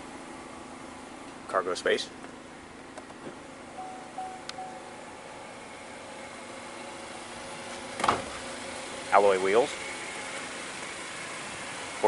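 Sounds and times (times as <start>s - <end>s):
steady mechanical hum: 0.0s - 12.0s
faint even tones: 3.8s - 5.2s
short faint tone: 3.8s - 5.2s.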